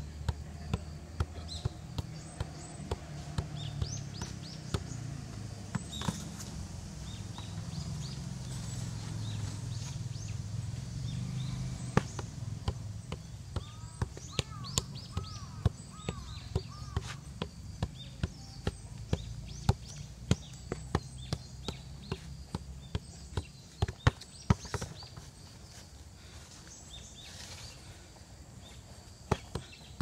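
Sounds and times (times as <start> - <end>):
football tapped off feet: 0.2 - 5.0, 11.9 - 25.3, 29.3 - 30.0
birds chirping: 0.6 - 30.0.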